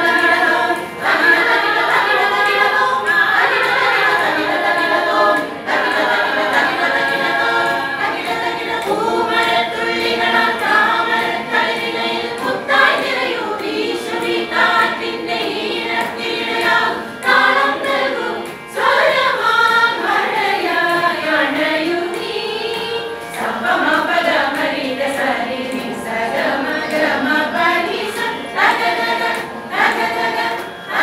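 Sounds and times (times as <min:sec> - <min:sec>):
women singing together: 0:00.0 - 0:31.0.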